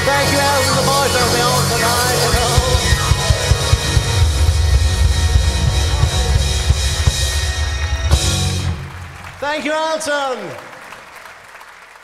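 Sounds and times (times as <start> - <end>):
drum kit: 0.0 - 9.4
live rock band: 0.0 - 9.4.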